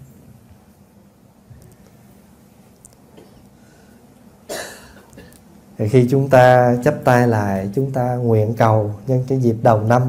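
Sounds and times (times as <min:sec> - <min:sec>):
person coughing: 0:04.5 - 0:05.4.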